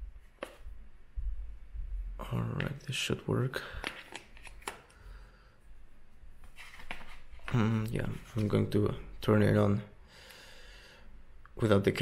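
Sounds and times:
phone handling rustle: 0:03.8 - 0:05.0.

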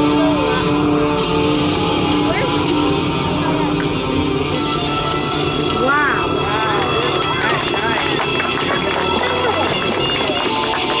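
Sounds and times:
background music: 0:00.0 - 0:11.0
people's voices: 0:05.6 - 0:11.0.

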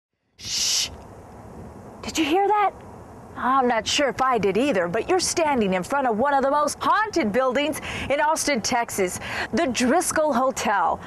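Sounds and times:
faint background hiss: 0:00.3 - 0:11.0
short hissing whoosh: 0:00.4 - 0:01.0.

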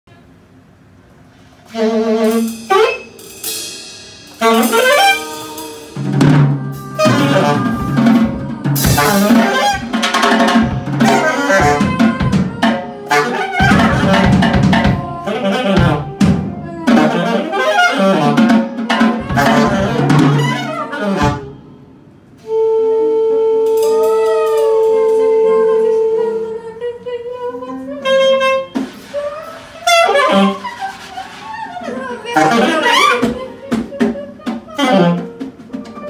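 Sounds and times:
drum kit: 0:01.5 - 0:22.6, 0:28.6 - 0:36.0
saxophone: 0:01.6 - 0:03.7, 0:04.3 - 0:36.0
higher wavering line: 0:02.9 - 0:17.7.

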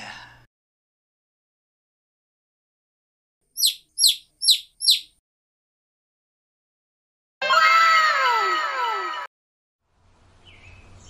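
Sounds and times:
falling bird-like chirps: 0:03.6 - 0:05.2.

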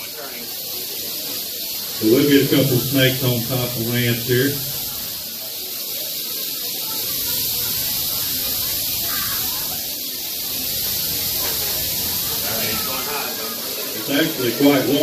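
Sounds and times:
rattlesnakes rattling: 0:00.0 - 0:15.0.

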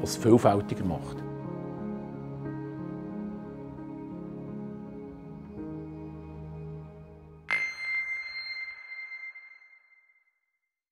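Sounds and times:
bell-like ping: 0:07.5 - 0:10.4.

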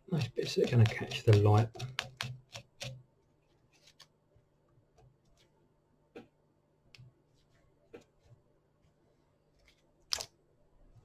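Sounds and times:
brush scratching fibres: 0:00.0 - 0:04.1.

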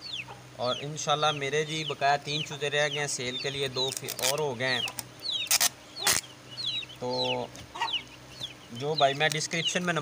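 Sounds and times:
chicks peeping: 0:00.0 - 0:10.0.

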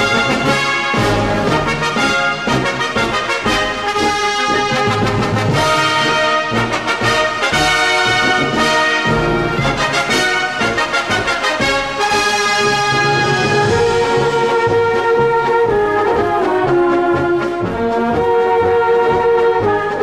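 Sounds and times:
brass band playing a march: 0:00.0 - 0:20.0.

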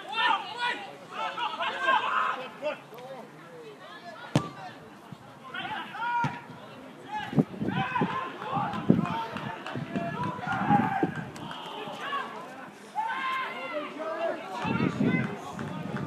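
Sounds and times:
players shouting: 0:00.0 - 0:02.8, 0:05.4 - 0:16.0
ball being kicked: 0:04.3 - 0:04.6.

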